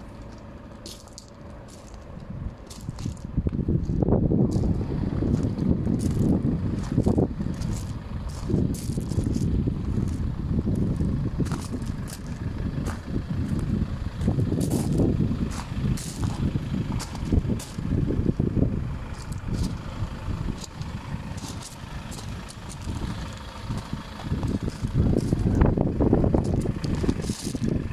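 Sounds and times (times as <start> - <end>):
footsteps crunching on gravel: 0.0 - 18.0, 19.1 - 25.6, 26.4 - 27.9
wind buffeting microphone: 1.6 - 27.9.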